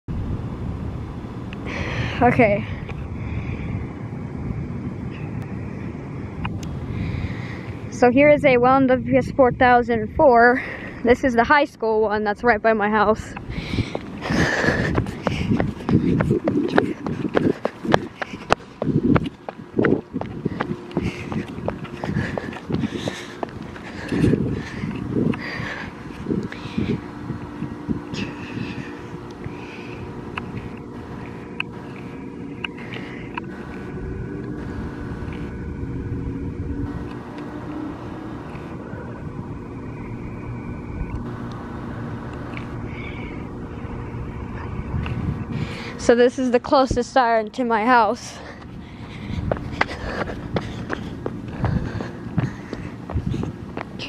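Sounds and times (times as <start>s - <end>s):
faint steady tones: 0.1s - 54.0s
steady low hum: 0.1s - 54.0s
footsteps: 13.8s - 35.6s, 48.2s - 54.0s
person laughing: 14.2s - 17.7s.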